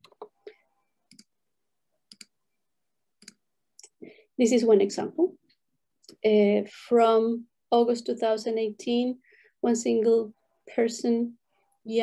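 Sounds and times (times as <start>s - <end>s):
computer mouse clicking: 1.1s - 1.3s, 2.1s - 2.4s.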